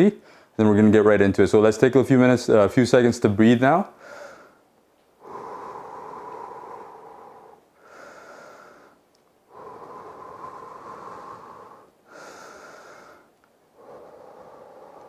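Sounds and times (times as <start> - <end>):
man breathing deeply: 0.2 - 0.6, 3.9 - 15.0.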